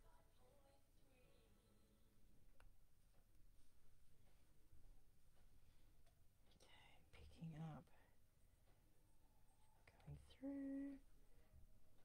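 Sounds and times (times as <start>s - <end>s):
woman murmuring: 10.2s - 11.0s.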